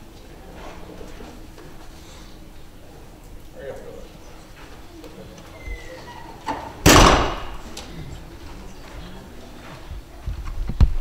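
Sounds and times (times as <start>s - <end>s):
wooden door banging shut: 6.4s - 7.7s.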